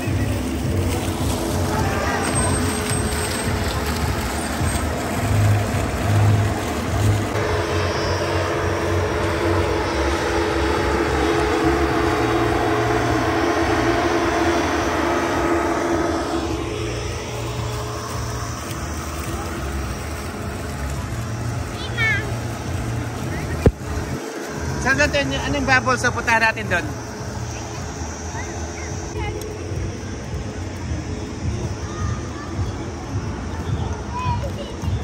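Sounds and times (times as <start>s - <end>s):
blower fan droning whir: 0.0s - 35.0s.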